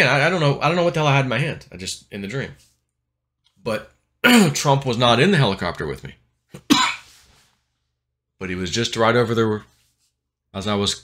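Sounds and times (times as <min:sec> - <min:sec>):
man coughing: 0:04.2 - 0:04.6, 0:06.6 - 0:07.1.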